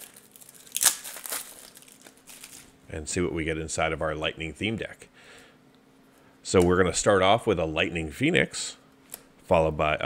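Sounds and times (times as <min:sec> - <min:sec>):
plastic wrapper crinkling: 0:00.0 - 0:02.8.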